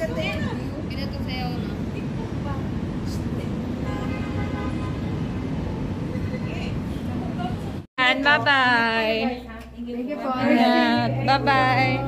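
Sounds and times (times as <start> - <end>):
city traffic noise: 0.0 - 12.0.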